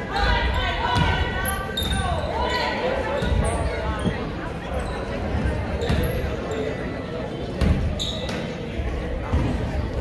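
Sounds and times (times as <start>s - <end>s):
echoing chatter of people: 0.0s - 10.0s.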